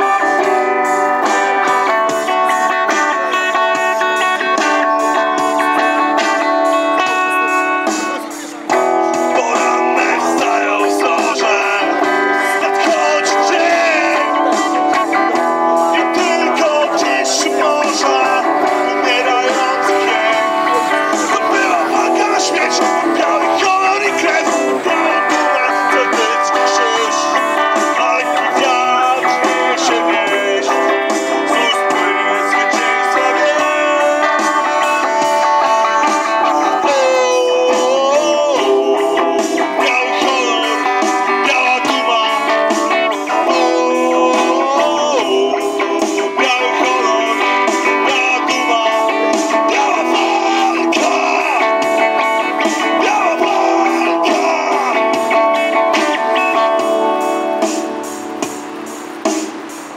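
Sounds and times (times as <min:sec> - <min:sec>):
live electric guitar music: 0:00.0 - 0:59.9.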